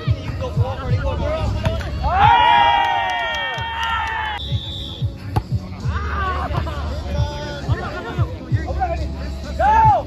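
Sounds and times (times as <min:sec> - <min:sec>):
music with a steady beat: 0:04.4 - 0:10.0.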